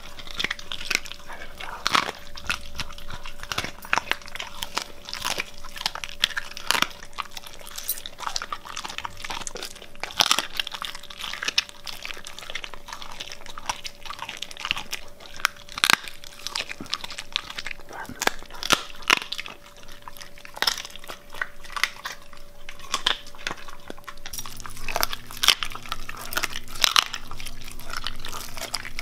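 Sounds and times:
dog chewing with crunches: 0.0 - 29.0
faint steady hum: 0.0 - 29.0.

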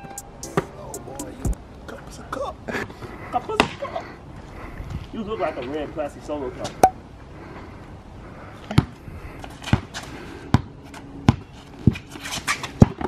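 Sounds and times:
basketball bouncing on concrete: 8.7 - 9.0, 10.5 - 11.5.

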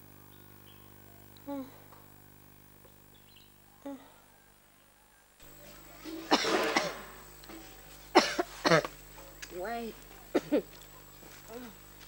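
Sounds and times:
person coughing: 6.3 - 7.1, 8.2 - 8.9, 10.4 - 10.6.

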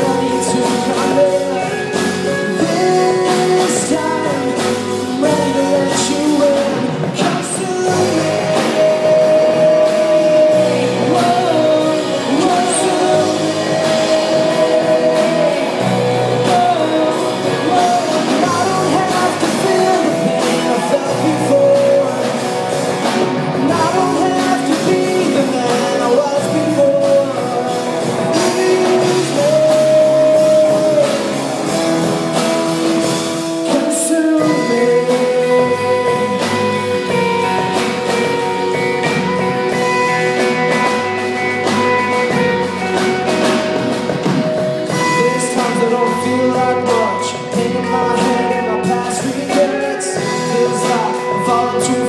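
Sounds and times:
drum kit: 0.0 - 52.0
electric guitars: 0.0 - 52.0
man singing: 0.0 - 52.0.

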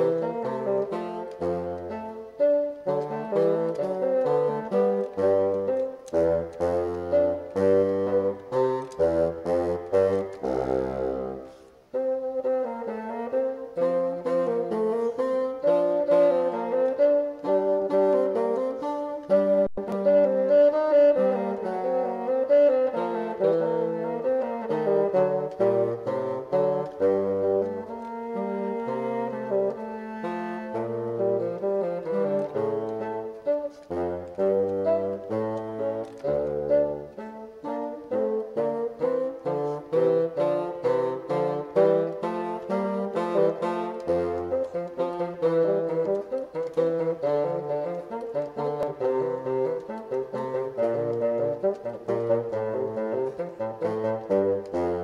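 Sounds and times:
bassoon duet: 0.0 - 55.0.

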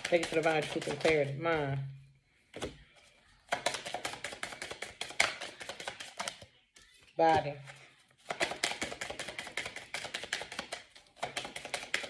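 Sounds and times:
cards being shuffled: 3.5 - 7.1, 7.7 - 12.0.

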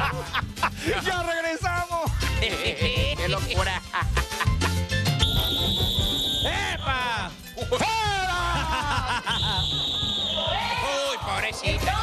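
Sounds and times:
jingle music over a beat: 0.0 - 10.8.

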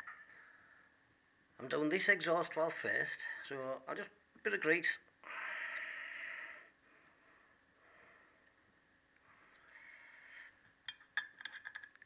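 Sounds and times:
man breathing: 5.2 - 8.6, 9.2 - 10.6.

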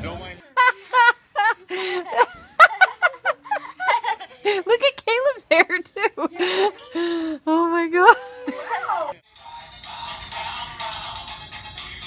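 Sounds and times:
toy playing electronic song: 9.3 - 12.0.

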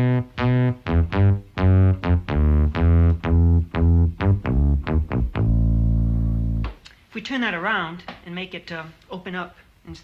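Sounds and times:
synthesizer plucky bass notes: 0.0 - 6.7.

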